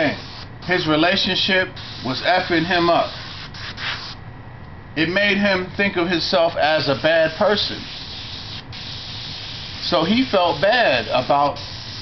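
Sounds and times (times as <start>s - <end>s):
airbrush spraying hiss: 0.1s - 0.8s, 1.8s - 4.2s, 6.4s - 12.0s.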